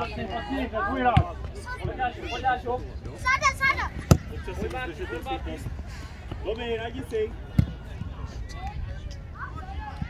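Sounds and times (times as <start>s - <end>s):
football kicked with sharp thud: 1.1s - 1.4s, 4.0s - 4.4s.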